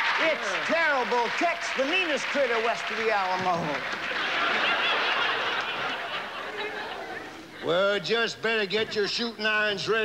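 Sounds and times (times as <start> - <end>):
audience laughing: 3.6 - 9.2.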